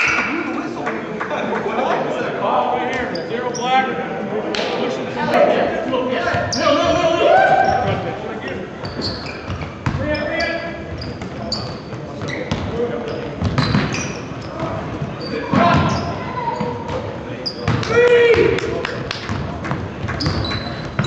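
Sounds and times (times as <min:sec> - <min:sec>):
sneaker squeaks: 0:02.9 - 0:03.9, 0:06.2 - 0:07.0, 0:07.6 - 0:17.9, 0:20.0 - 0:21.0
players shouting: 0:05.2 - 0:08.2
basketball bouncing: 0:09.5 - 0:10.0.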